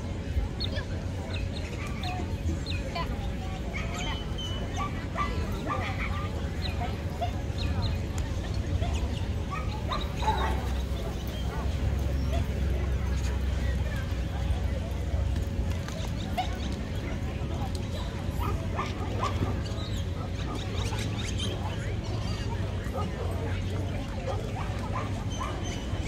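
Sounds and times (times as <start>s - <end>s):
dogs barking and yipping: 3.0s - 14.6s, 15.2s - 26.0s.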